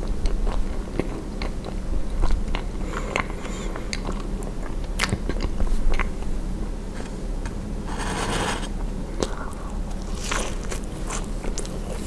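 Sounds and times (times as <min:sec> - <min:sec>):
person chewing food: 0:00.0 - 0:06.3, 0:09.2 - 0:12.0
low steady rumble: 0:00.0 - 0:12.0.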